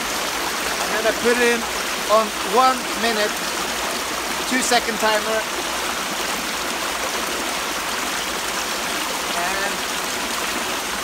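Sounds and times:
creek running over stones: 0.0 - 11.0.

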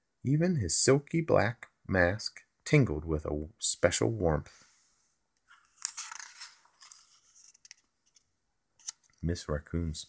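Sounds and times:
book page rustling: 5.5 - 9.3.

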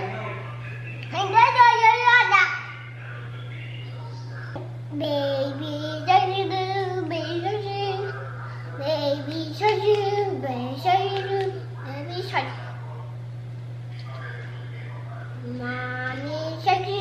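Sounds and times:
steady low hum: 0.0 - 17.0
toddler singing wordless tune: 4.9 - 8.1, 8.8 - 12.4, 15.5 - 17.0.

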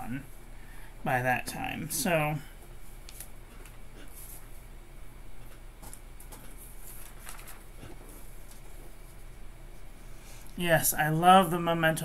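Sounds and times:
low electrical hum: 0.0 - 12.0
paper rustling: 5.8 - 9.3.

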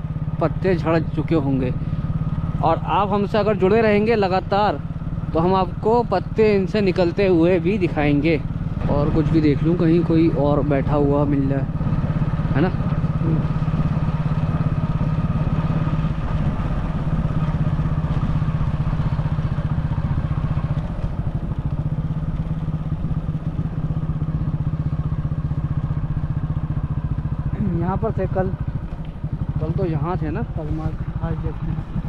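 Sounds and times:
motorcycle engine running: 0.0 - 32.0.

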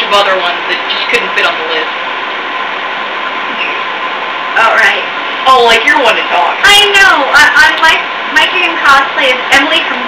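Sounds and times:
faint steady whine: 0.0 - 10.0
steady background hiss: 0.0 - 10.0.

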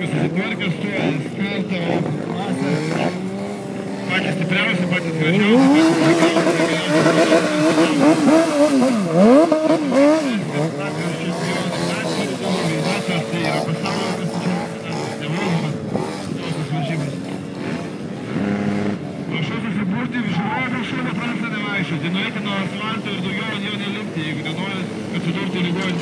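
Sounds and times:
vehicle engine revving: 0.0 - 26.0.

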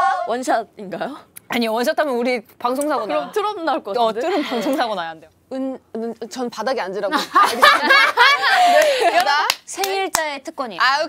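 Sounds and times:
young women laughing: 7.1 - 9.4
hand claps: 8.7 - 10.3.

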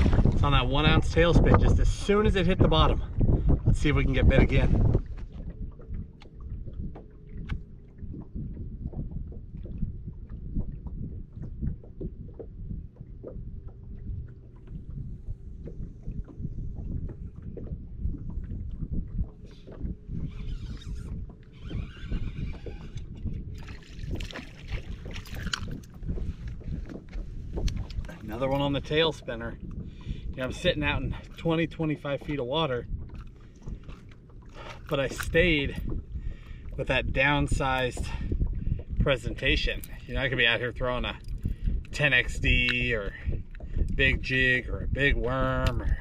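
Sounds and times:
water splashing: 0.0 - 46.0
waves lapping against boat hull: 0.0 - 46.0.

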